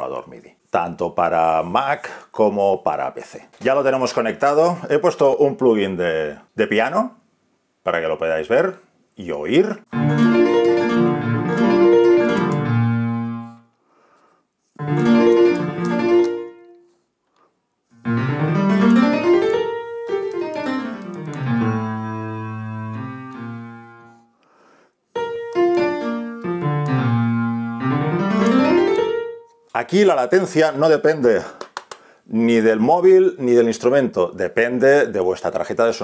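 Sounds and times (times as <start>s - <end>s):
single piano notes: 9.9s - 13.6s, 14.8s - 16.8s, 18.0s - 24.2s, 25.2s - 29.6s.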